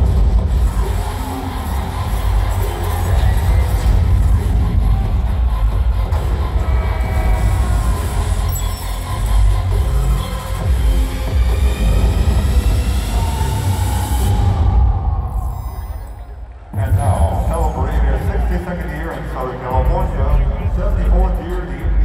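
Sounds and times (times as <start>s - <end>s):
loud music with deep bass: 0.0s - 22.0s.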